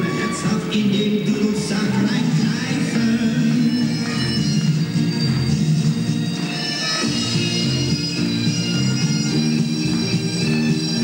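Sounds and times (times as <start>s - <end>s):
bagpipe music: 3.3s - 11.0s.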